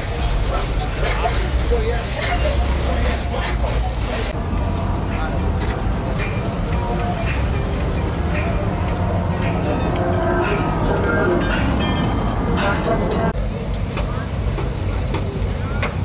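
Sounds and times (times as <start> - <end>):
music: 0.0 - 13.4
cars low engine rumble: 0.0 - 16.0
crowd voices: 0.0 - 16.0.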